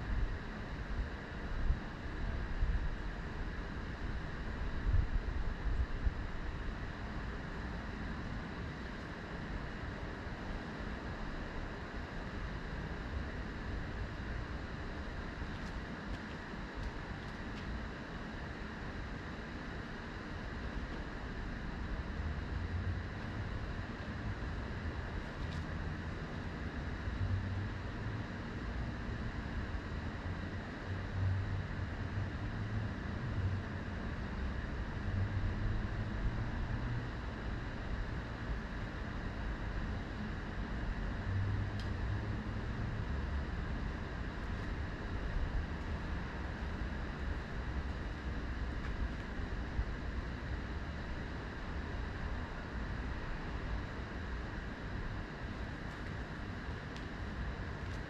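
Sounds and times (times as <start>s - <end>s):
low rumbling outdoor ambience: 0.0s - 58.0s.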